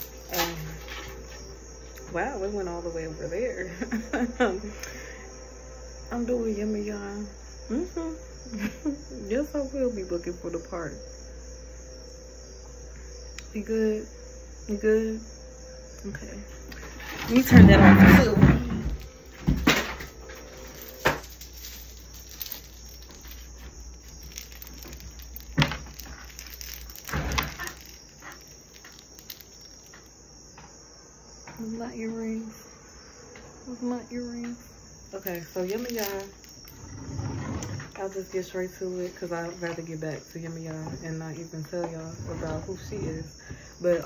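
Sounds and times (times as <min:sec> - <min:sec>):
low hum: 0:00.0 - 0:30.2
crickets chirping: 0:00.0 - 0:44.0.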